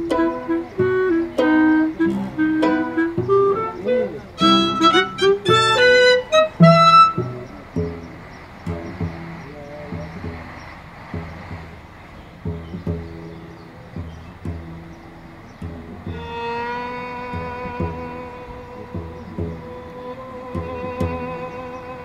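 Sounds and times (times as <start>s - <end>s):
violin cello and clarinet trio: 0.0s - 10.6s, 12.3s - 22.0s.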